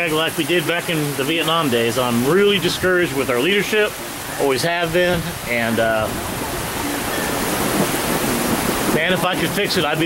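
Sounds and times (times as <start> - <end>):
heavy rain pouring: 0.0 - 10.0.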